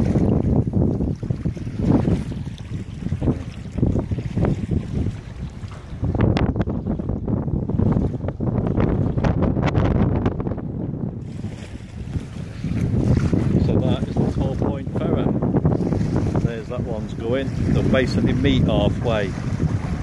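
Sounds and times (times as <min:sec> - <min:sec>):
water sloshing at shore: 0:00.0 - 0:07.2, 0:11.2 - 0:20.0
wind buffeting microphone: 0:00.0 - 0:20.0.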